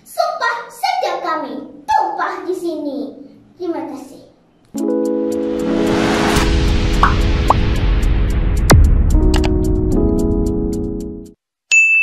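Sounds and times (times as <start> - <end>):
background music: 4.8 - 11.4.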